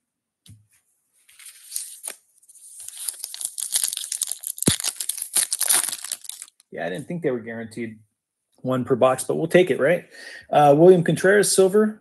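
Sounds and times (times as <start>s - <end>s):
foil wrapper tearing and crinkling: 1.3s - 6.6s.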